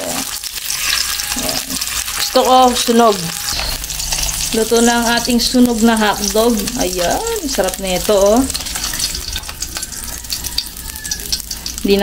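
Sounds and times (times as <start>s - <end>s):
spatula pushing food in pan: 0.0s - 11.8s
hotdogs sizzling in oil: 0.0s - 12.0s.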